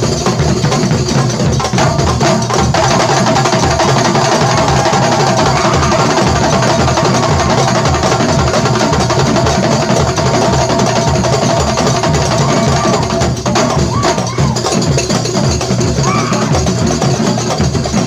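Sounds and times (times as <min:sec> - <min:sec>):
frame drums and hand drums: 0:00.0 - 0:18.0.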